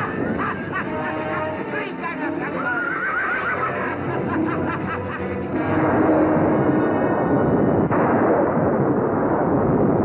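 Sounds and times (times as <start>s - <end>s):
dramatic orchestral music: 0.0s - 9.4s.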